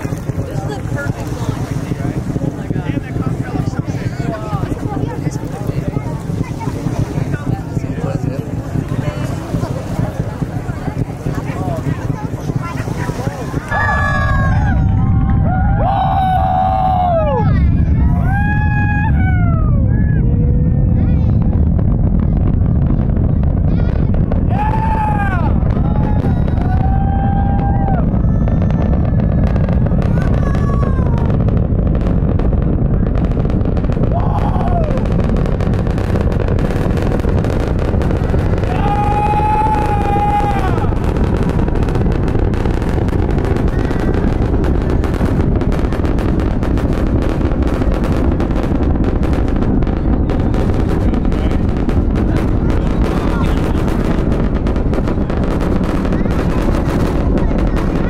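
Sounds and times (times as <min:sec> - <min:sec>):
rocket engines rumbling and crackling: 0:00.0 - 0:58.0
onlookers whooping and shouting: 0:13.6 - 0:20.9, 0:24.4 - 0:31.6, 0:34.0 - 0:35.2, 0:38.5 - 0:41.3.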